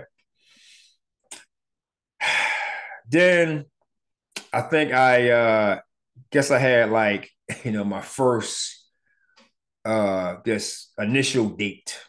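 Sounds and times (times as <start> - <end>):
man's mouth click: 1.2 - 1.5
loud breathy sigh: 2.2 - 3.0.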